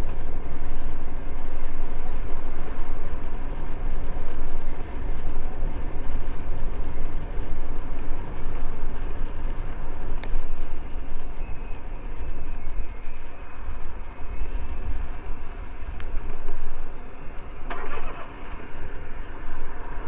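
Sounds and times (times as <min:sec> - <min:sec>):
bicycle tyre noise: 0:00.0 - 0:20.0
wind buffeting microphone: 0:00.0 - 0:20.0.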